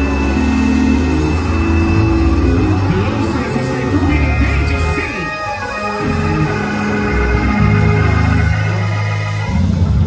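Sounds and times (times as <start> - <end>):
keyboard chords: 0.0 - 10.0.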